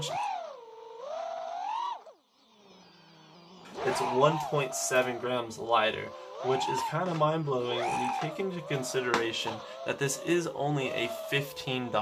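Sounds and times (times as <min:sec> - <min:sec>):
drone motors whining: 0:00.0 - 0:12.0.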